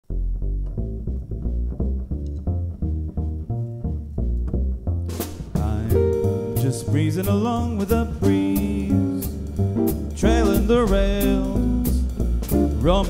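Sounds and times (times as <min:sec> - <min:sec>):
plucked double bass: 0:00.0 - 0:13.0
guitar: 0:00.1 - 0:13.0.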